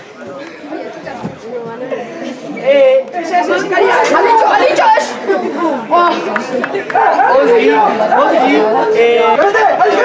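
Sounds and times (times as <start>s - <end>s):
voices shouting over one another: 3.2s - 6.2s, 7.0s - 10.0s.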